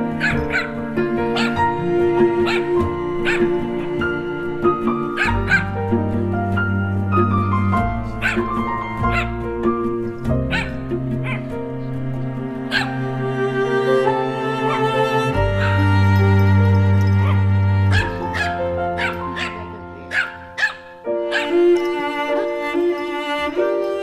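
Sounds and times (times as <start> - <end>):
sustained chord music: 0.0 - 24.0
small dog yipping: 0.2 - 0.7, 1.4 - 1.6, 2.4 - 3.5, 5.2 - 5.7, 8.2 - 9.4, 10.5 - 11.5, 12.7 - 13.0, 15.6 - 15.8, 17.2 - 21.6.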